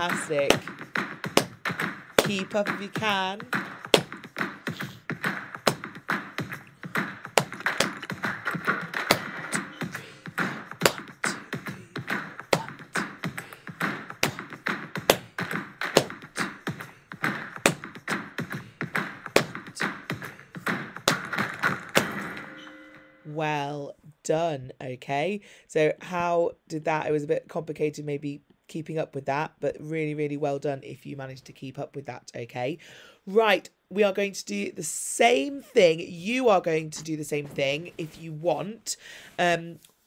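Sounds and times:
hand claps: 0.0 - 22.4
percussion taps: 0.0 - 22.5
backing music: 0.0 - 23.3.

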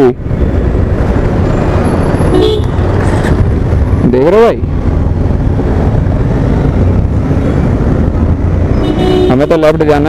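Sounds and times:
motorcycle engine rumbling: 0.2 - 10.0.

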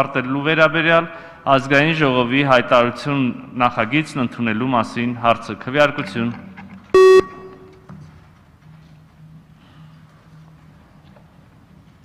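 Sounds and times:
loud electronic beep: 7.0 - 7.7.

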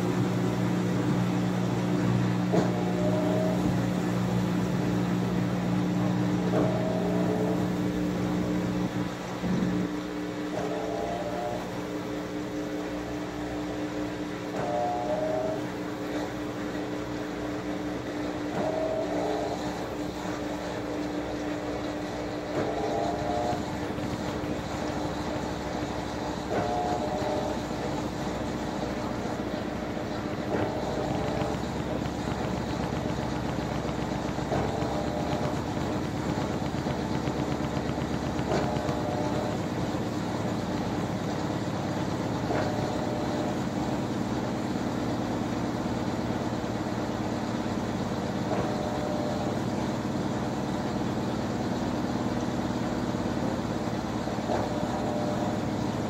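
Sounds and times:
washing machine motor hum: 0.0 - 56.0.

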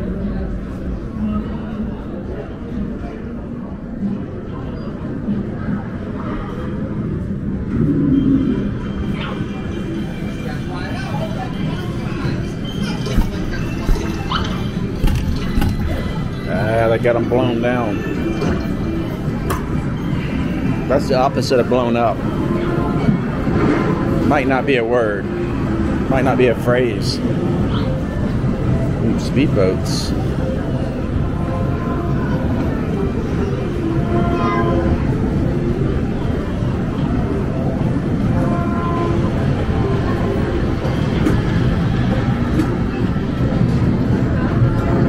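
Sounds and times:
background chatter: 0.0 - 45.0
rumble of machines and people: 0.0 - 45.0
man talking: 29.0 - 30.2.

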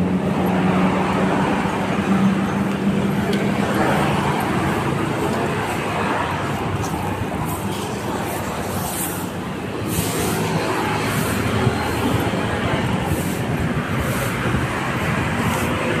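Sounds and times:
vehicle low rumble: 0.0 - 16.0.

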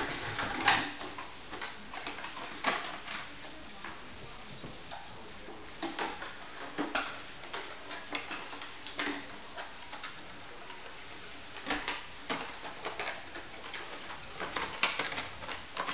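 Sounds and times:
dog claws tapping wooden floor: 11.6 - 15.9.

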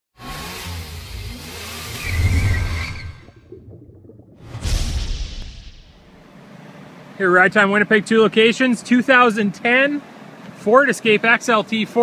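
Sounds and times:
car engine revving with whoosh: 0.2 - 3.2.

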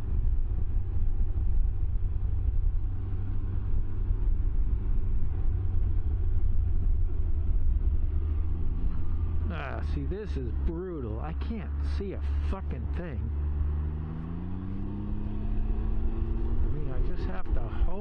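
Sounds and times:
vehicle engine rumble: 0.0 - 18.0
man speaking: 9.4 - 13.4, 16.6 - 18.0.

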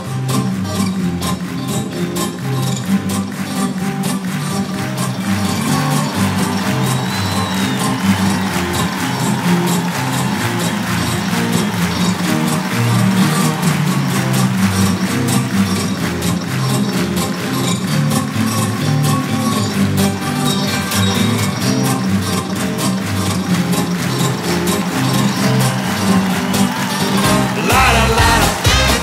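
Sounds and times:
instrumental band playing: 20.8 - 29.0
stepping bass line: 27.2 - 29.0.

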